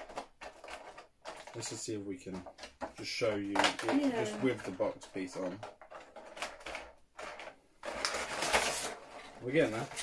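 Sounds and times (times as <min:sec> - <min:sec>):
plastic rubbing and scraping: 0:00.0 - 0:10.0
plastic packaging rustling: 0:03.6 - 0:10.0.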